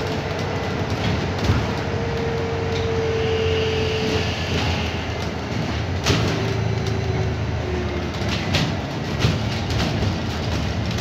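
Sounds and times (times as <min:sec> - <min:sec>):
bodywork knocks and rattles: 0:00.0 - 0:02.2, 0:05.2 - 0:11.0
bus engine and road rumble: 0:00.0 - 0:11.0.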